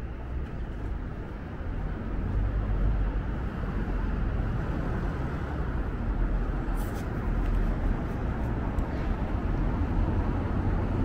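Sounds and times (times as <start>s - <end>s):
cars passing on road: 0.0s - 11.0s.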